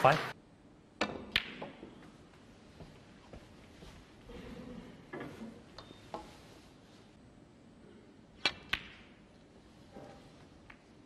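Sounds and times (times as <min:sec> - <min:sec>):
snooker cue and balls clicking: 0:01.0 - 0:03.0, 0:08.4 - 0:11.0.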